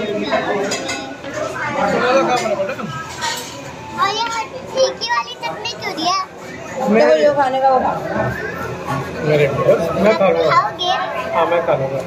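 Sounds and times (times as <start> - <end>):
girl's high-pitched voice: 4.0 - 6.4.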